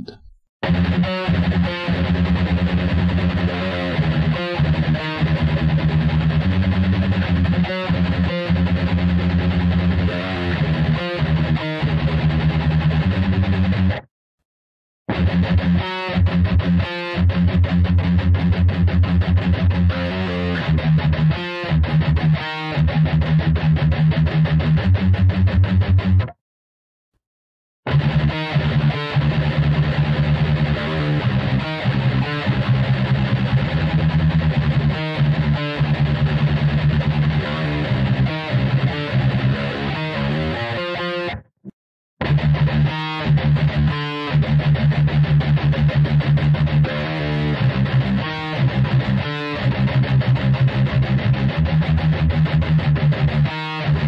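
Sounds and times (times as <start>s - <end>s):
distorted electric guitar riff: 0.0s - 14.1s, 15.1s - 26.4s, 27.9s - 41.5s, 42.2s - 54.0s.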